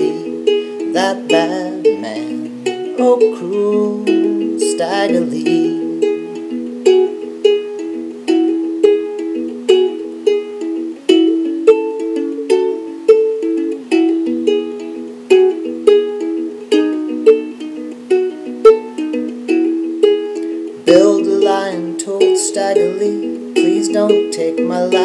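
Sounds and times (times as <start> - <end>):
ukulele blues melody plucked: 0.0 - 25.0.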